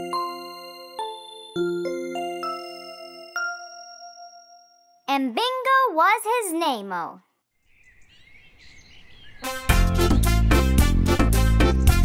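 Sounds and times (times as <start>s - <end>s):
birds chirping: 7.5s - 10.8s.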